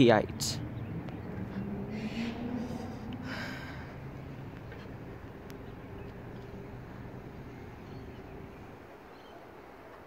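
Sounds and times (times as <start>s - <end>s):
distant diesel locomotive engine: 0.0s - 10.0s.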